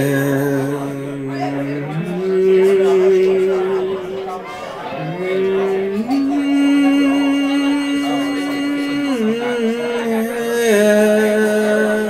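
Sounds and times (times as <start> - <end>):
man singing long wordless notes: 0.0 - 12.0.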